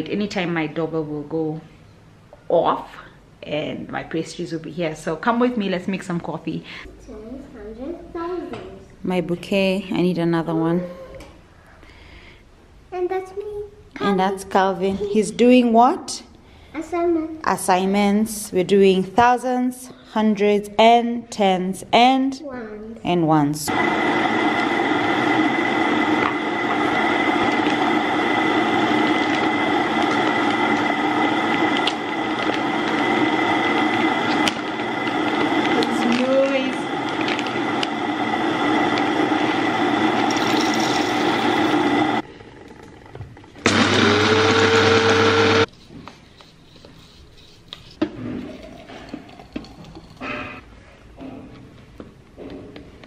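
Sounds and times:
coffee grinder whirring: 23.7s - 45.7s.

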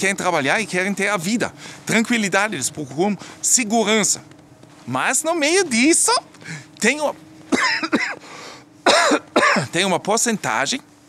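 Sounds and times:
soft breath: 1.5s - 1.9s, 3.2s - 3.4s, 6.4s - 6.8s, 8.2s - 8.8s
man coughing: 7.5s - 9.8s.

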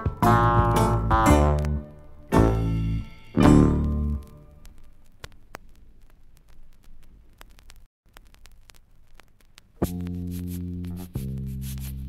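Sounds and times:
vinyl record crackle and clicks: 0.0s - 12.0s.

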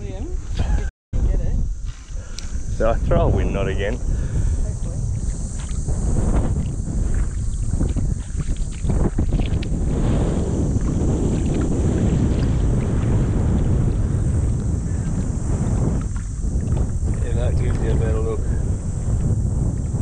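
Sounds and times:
wind buffeting microphone: 0.0s - 20.0s
water swishing around legs: 4.6s - 17.8s.

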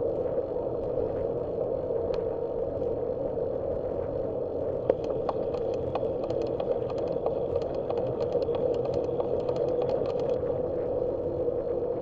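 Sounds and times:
bicycle tyre and wind hum: 0.0s - 12.0s
rapid light ticking: 4.8s - 10.4s.

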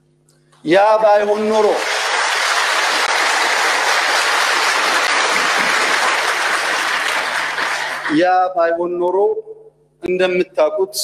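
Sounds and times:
crowd applauding: 1.0s - 8.2s.

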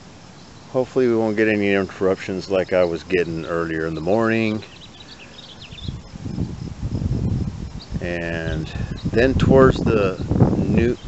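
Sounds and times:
birds chirping: 0.0s - 11.0s
wind buffeting microphone: 1.1s - 11.0s.

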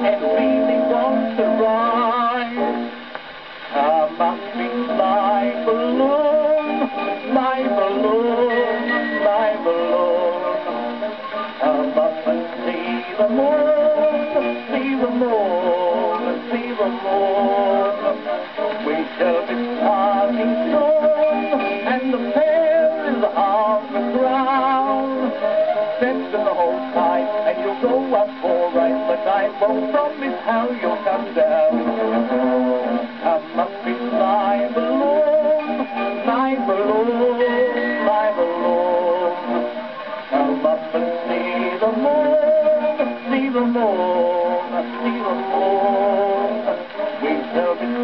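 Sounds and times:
old gramophone song playing: 0.0s - 48.0s.

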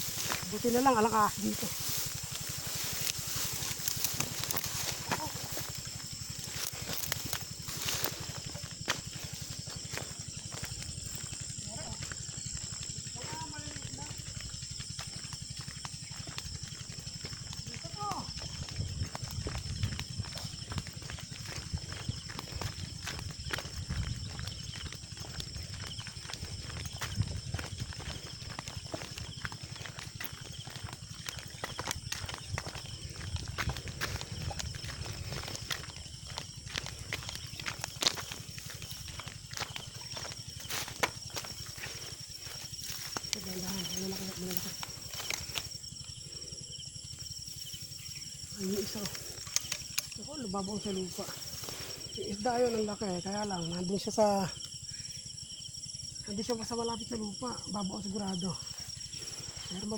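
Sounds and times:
footsteps on dry leaves: 0.0s - 45.9s.

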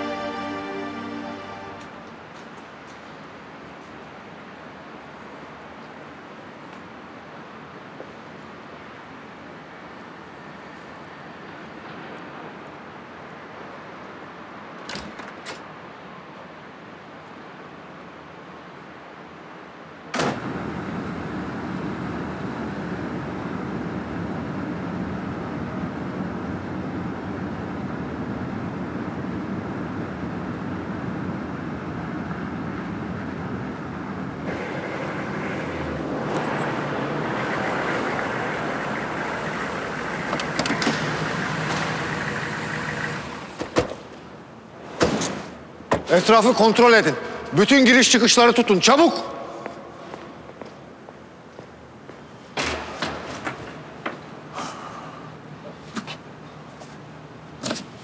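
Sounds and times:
car engine and road hum: 27.4s - 44.6s.

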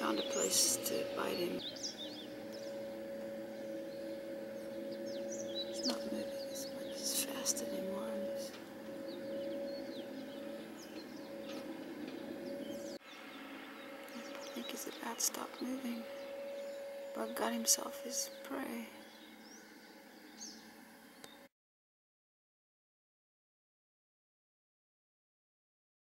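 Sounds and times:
birds chirping: 0.0s - 21.5s
steady hum: 0.0s - 21.5s.

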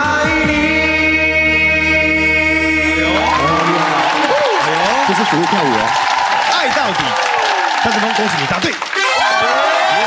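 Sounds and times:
backing music: 0.0s - 5.6s
studio audience applauding and cheering: 1.6s - 10.0s.

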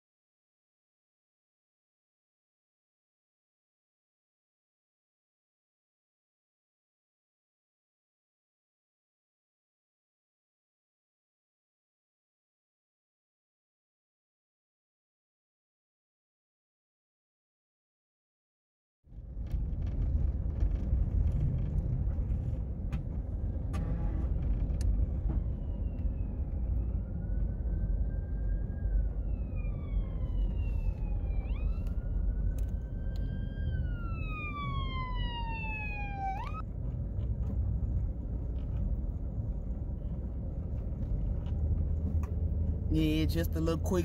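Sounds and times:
car driving from inside cabin: 19.1s - 44.0s
siren wailing: 25.2s - 36.6s.

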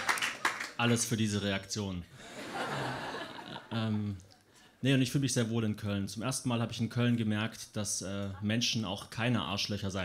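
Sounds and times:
man talking: 0.8s - 2.1s, 3.7s - 10.0s
audience laughter: 2.2s - 3.7s.

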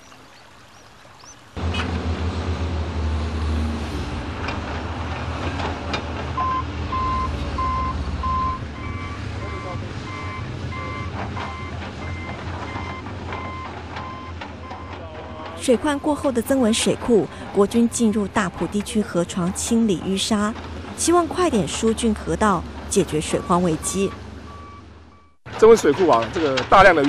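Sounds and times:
excavator diesel engine under load: 1.6s - 27.0s
warning alarm beeping: 6.4s - 15.0s, 15.6s - 20.0s, 21.1s - 25.4s.

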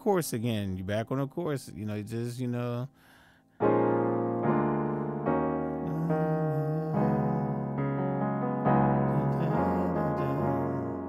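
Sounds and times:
piano chords on keyboard: 2.8s - 11.0s.

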